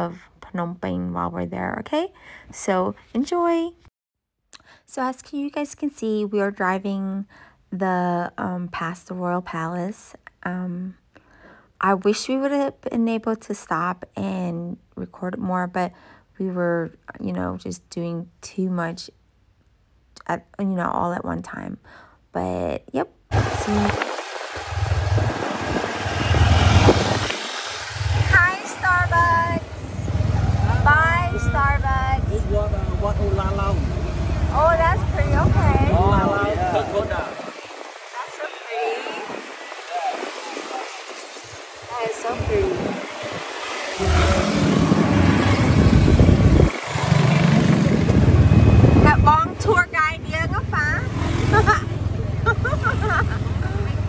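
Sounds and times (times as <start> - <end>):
people talking: 0.0 - 3.8, 4.9 - 11.0, 11.8 - 19.1, 20.2 - 21.8, 22.4 - 24.0, 28.3 - 30.1, 30.7 - 37.5, 38.1 - 41.0, 41.9 - 43.1, 49.0 - 54.0
motorbike engine rumble: 23.3 - 37.6, 41.5 - 54.0
road noise: 23.3 - 54.0.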